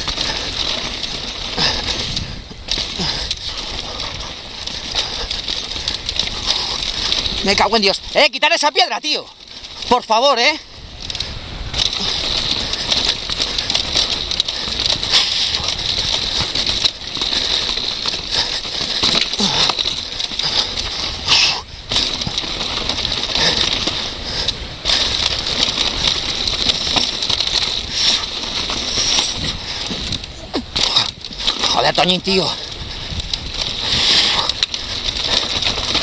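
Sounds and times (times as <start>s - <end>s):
wind rush on microphone: 0.0s - 8.2s, 9.3s - 36.0s
bike rattling over stones: 0.0s - 36.0s.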